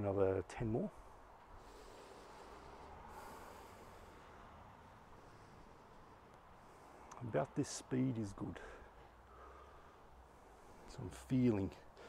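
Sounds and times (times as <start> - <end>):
faint background hiss: 0.0 - 12.0
breath through the nose: 1.6 - 4.4.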